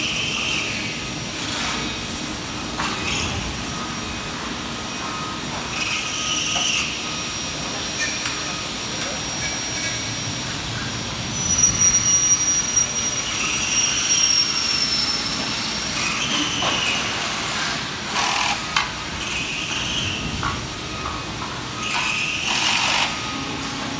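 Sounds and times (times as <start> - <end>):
factory machinery noise: 0.0 - 23.9
high-pitched machine whine: 0.0 - 23.9.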